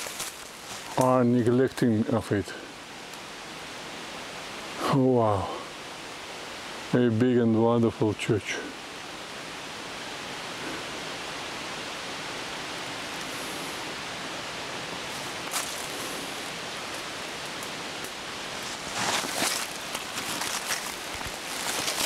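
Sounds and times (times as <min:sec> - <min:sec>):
rustling: 0:00.0 - 0:01.1, 0:15.1 - 0:22.0
hiss-like outdoor noise: 0:00.0 - 0:22.0.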